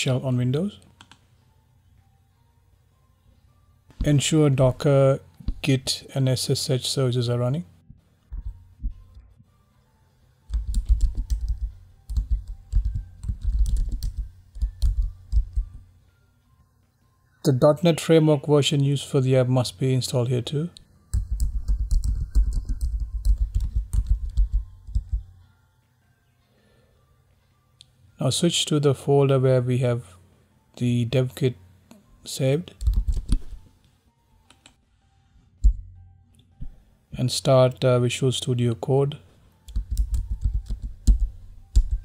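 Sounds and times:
typing on computer keyboard: 10.5s - 15.8s, 21.1s - 25.3s, 32.7s - 33.6s, 39.7s - 42.0s.

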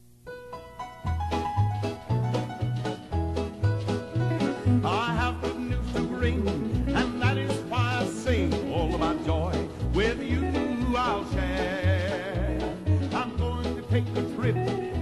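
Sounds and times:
bouncing bass line: 1.0s - 15.0s
upbeat gospel band music: 1.1s - 15.0s.

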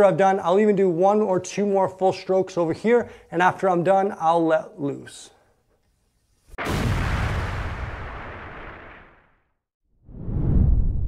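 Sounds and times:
deep boom: 6.5s - 9.3s.

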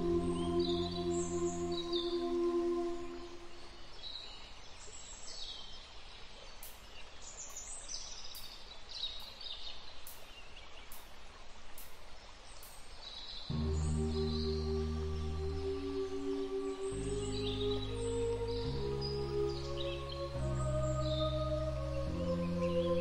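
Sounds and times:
sustained ambient music tones: 0.0s - 3.9s, 13.5s - 23.0s
outdoor nature ambience: 0.0s - 23.0s.

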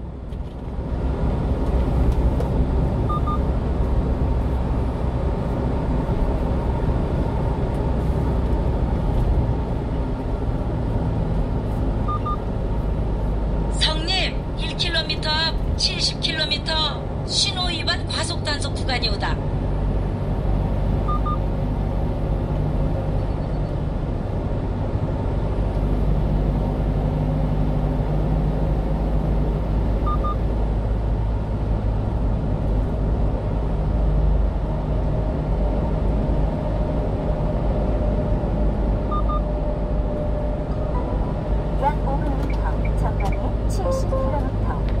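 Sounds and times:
truck engine and road noise: 0.0s - 45.0s.

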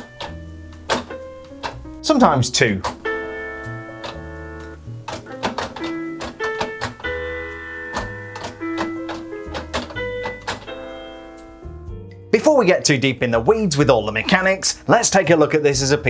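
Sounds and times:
single piano notes: 0.0s - 12.3s.

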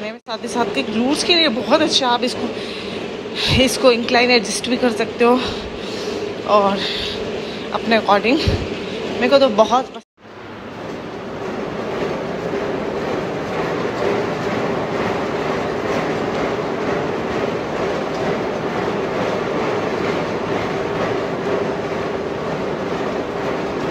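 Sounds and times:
treadmill belt rumbling: 0.0s - 23.9s.

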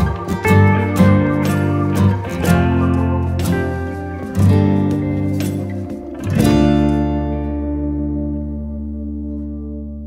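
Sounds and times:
strummed acoustic guitar chords: 0.0s - 10.0s.

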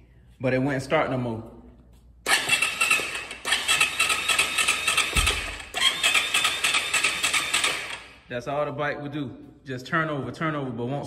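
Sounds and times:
engine electric starter cranking: 2.3s - 8.3s.

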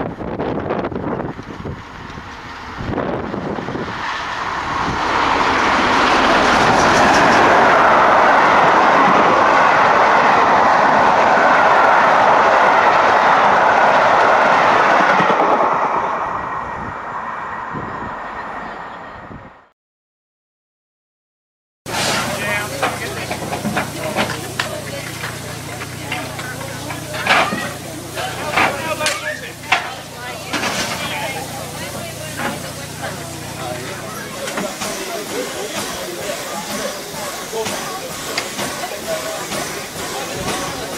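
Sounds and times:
steam train passing at speed: 0.0s - 19.7s, 21.9s - 40.9s
wheels rumbling on rails: 0.0s - 19.7s, 21.9s - 40.9s
crowd chatter: 3.4s - 17.0s, 21.9s - 40.9s.

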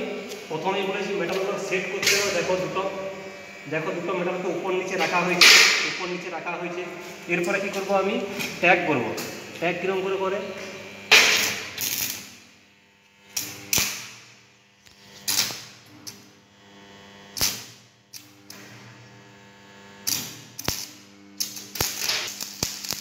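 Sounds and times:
electrical hum: 0.0s - 23.0s
welding arc crackling: 0.0s - 23.0s.

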